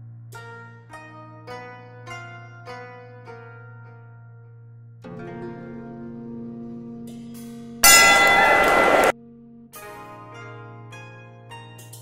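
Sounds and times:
plucked-string background music: 0:00.3 - 0:04.4, 0:05.0 - 0:08.0
loud sound effect: 0:07.8 - 0:09.1.

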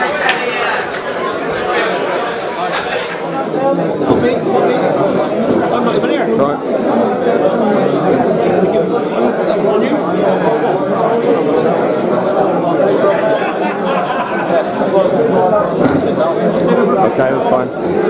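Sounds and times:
crowd talking in echoing hall: 0:00.0 - 0:18.0.

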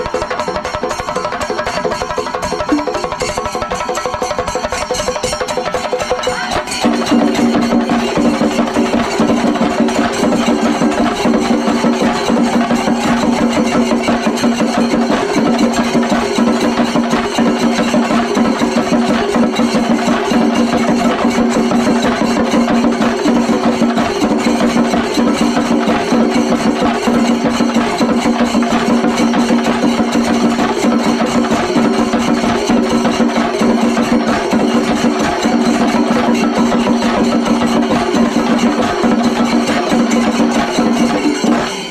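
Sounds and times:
drums beaten with sticks: 0:00.0 - 0:41.9
hand cymbals: 0:00.0 - 0:41.9.

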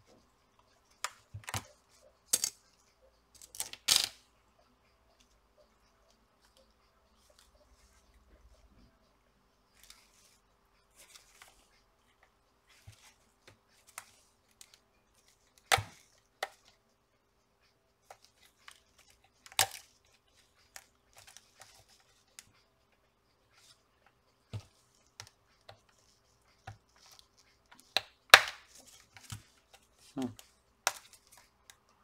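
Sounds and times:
plastic clips clicking and cracking: 0:19.4 - 0:19.9.

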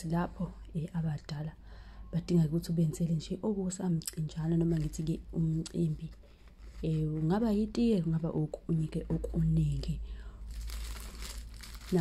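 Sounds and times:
tea bag packaging crinkling: 0:04.6 - 0:05.2, 0:10.4 - 0:12.0.

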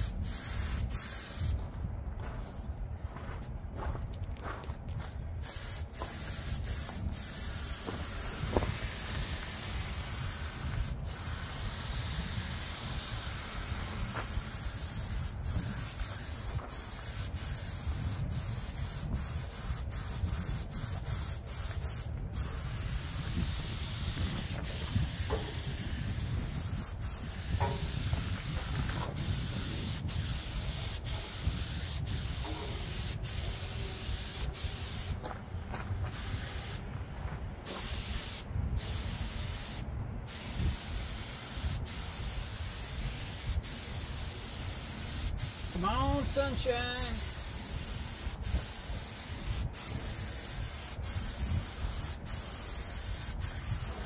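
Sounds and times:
spray gun hissing: 0:00.0 - 0:01.6, 0:05.4 - 0:35.3, 0:36.1 - 0:36.9, 0:37.6 - 0:54.0.

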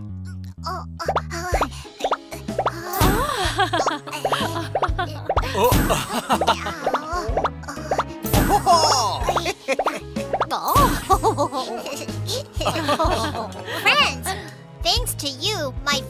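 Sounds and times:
playful cartoon music: 0:00.0 - 0:16.0.

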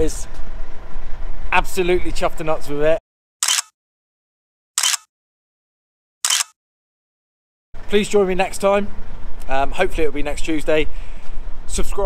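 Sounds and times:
low engine hum: 0:00.0 - 0:03.0, 0:07.8 - 0:12.0
camera shutter click: 0:03.4 - 0:03.7, 0:04.8 - 0:05.1, 0:06.2 - 0:06.6.

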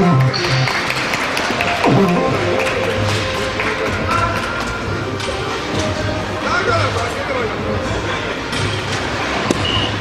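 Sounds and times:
hall noise: 0:00.0 - 0:10.0.

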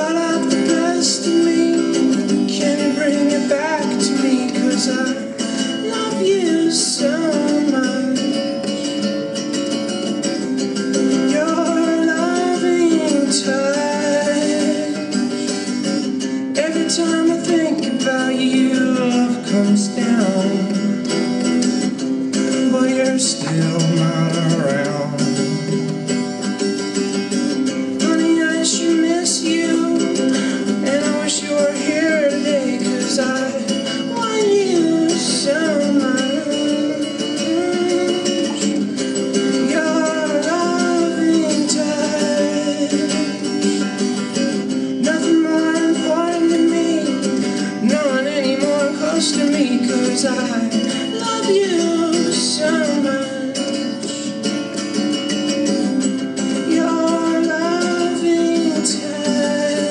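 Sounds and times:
man singing: 0:00.0 - 0:59.9
strummed electric guitar: 0:00.0 - 0:59.9.

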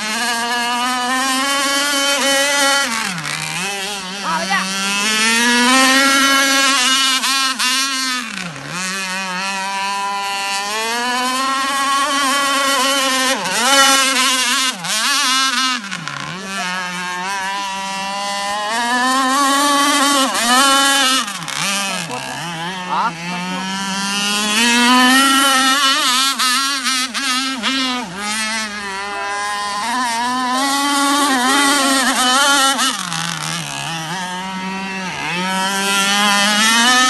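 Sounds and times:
boat engine revving: 0:00.0 - 0:37.0.

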